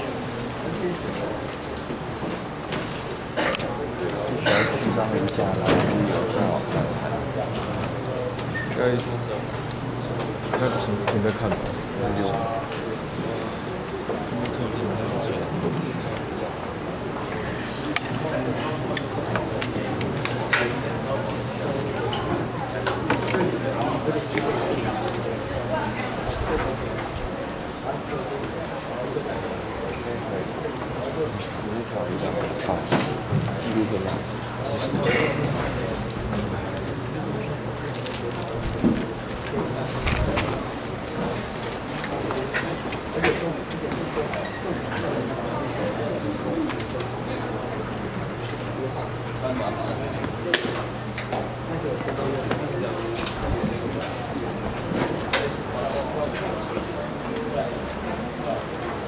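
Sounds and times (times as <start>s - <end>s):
murmur of voices: 0.0s - 59.0s.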